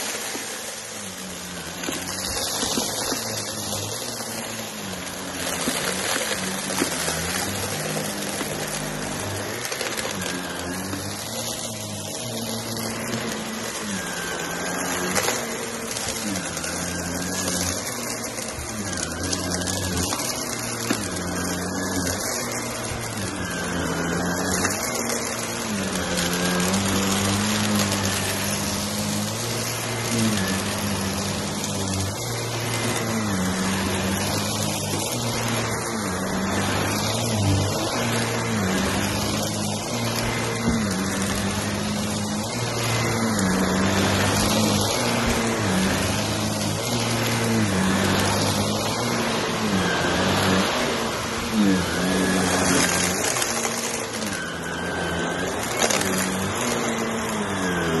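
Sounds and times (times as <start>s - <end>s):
upright vacuum cleaner on carpet: 0.0s - 58.0s.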